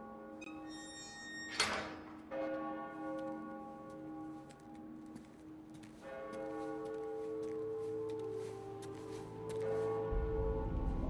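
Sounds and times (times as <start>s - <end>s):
church bells tolling: 2.0s - 8.6s, 9.6s - 10.8s.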